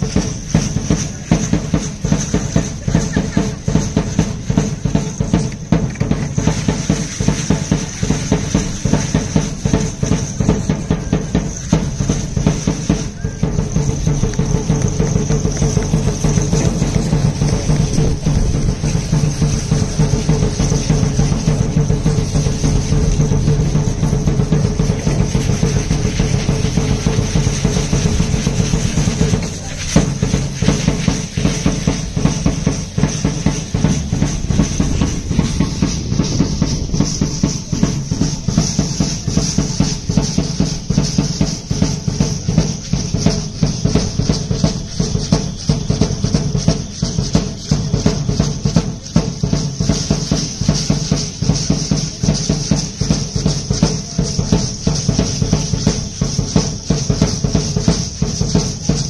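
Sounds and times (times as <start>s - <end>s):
fast drumming: 0.0s - 59.0s.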